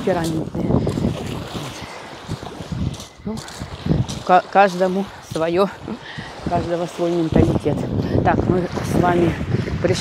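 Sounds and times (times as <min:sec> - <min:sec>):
waves lapping on pebbles: 0:00.0 - 0:10.0
wind buffeting microphone: 0:00.0 - 0:10.0.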